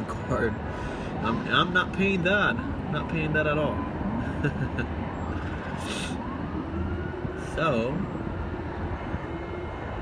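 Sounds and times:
city traffic rumble: 0.0s - 10.0s
faint siren: 0.0s - 10.0s.

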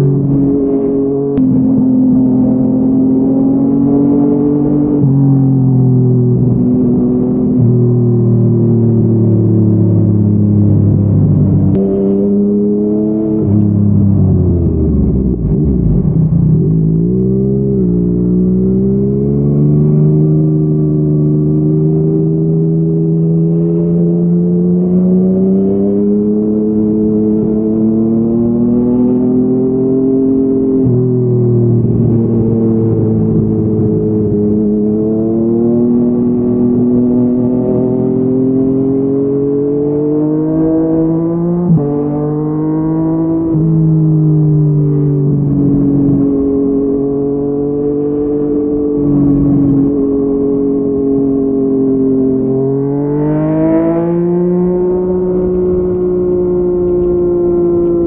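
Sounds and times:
motorcycle engine accelerating: 0.0s - 58.0s.

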